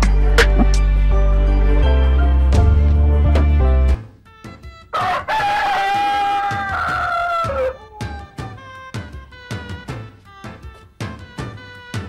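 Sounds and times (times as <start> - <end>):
rooster crowing: 4.9 - 8.5.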